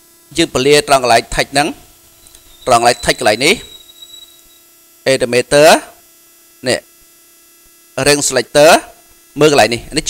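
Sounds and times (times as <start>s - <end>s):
faint electrical hum: 0.0s - 10.0s
man speaking: 2.6s - 3.7s.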